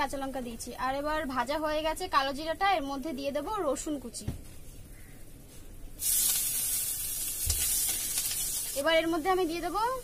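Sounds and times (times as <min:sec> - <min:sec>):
food sizzling in hot oil: 0:06.0 - 0:10.0.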